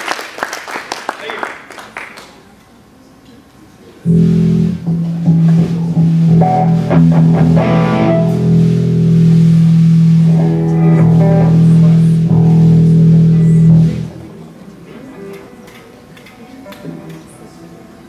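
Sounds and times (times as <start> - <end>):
low room noise: 0.0 - 18.0
live band through pa: 4.1 - 14.3.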